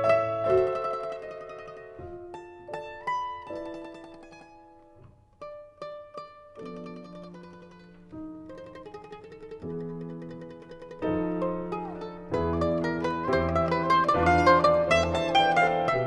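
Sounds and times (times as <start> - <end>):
mandolin: 0.0 - 16.0
piano: 0.0 - 16.0.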